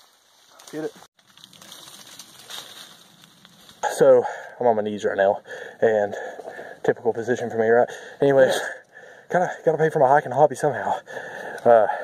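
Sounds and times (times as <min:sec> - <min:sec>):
rustling of dry leaves: 0:00.0 - 0:04.4.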